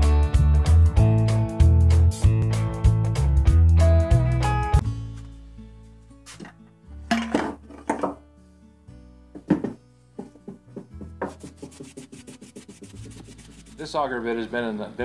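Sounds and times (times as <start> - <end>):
guitar music: 0.0 - 13.8
knocks on wooden workbench: 9.4 - 11.5
rubbing with paper towel: 11.2 - 14.2.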